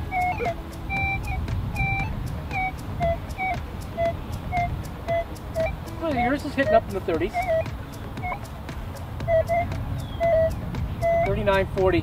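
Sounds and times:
metal detector beeps: 0:00.0 - 0:08.4, 0:09.3 - 0:11.5
low rumble of wind or handling: 0:00.0 - 0:12.0.

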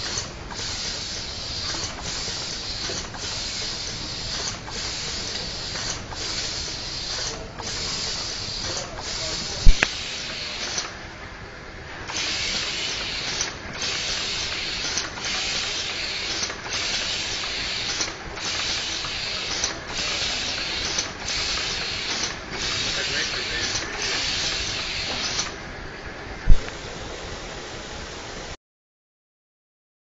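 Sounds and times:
compressed air hissing: 0:00.0 - 0:11.0, 0:12.1 - 0:25.6.

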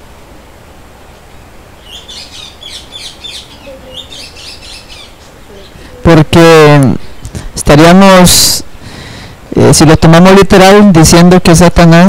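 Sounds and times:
bird chirping: 0:01.8 - 0:06.0, 0:06.9 - 0:07.5.

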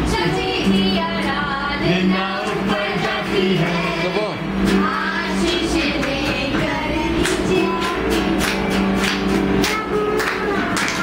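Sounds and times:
group singing led by child: 0:00.0 - 0:11.0
strummed acoustic guitar: 0:00.0 - 0:11.0.

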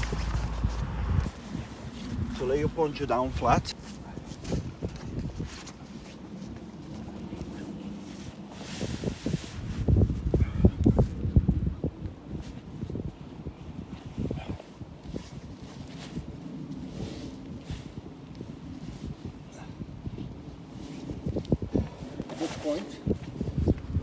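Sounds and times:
poncho sheet rustling on grass: 0:00.0 - 0:11.2, 0:11.8 - 0:24.0
wind buffeting microphone: 0:00.0 - 0:24.0.

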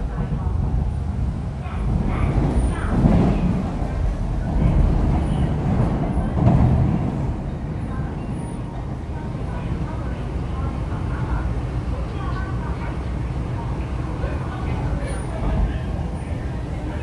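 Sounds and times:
train wheels rumbling inside car: 0:00.0 - 0:17.0.

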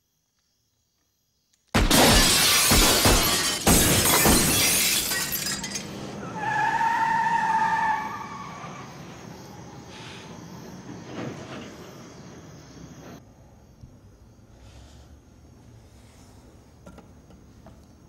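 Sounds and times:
loud crash with glass shattering: 0:01.8 - 0:06.0.

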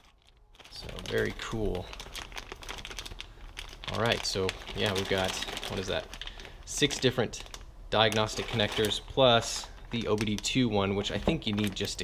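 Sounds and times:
plastic bags crinkling: 0:00.0 - 0:12.0
person speaking: 0:00.7 - 0:02.1, 0:03.8 - 0:12.0.

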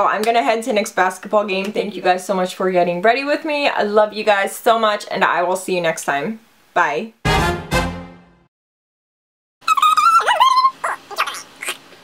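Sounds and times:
high-pitched whining cry: 0:09.6 - 0:11.9
short yelps: 0:09.6 - 0:11.9.

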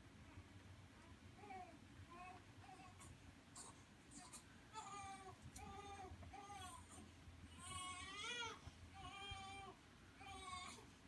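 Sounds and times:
baby crying: 0:01.4 - 0:10.9.

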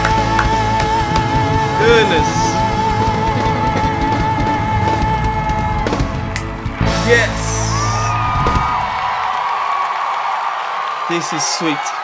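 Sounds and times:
live band playing: 0:00.0 - 0:09.0
man shouting: 0:01.8 - 0:02.6, 0:07.0 - 0:08.2
crowd noise: 0:05.1 - 0:12.0.

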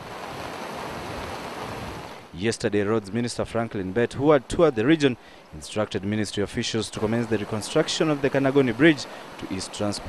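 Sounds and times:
floodwater rushing: 0:00.0 - 0:10.0.

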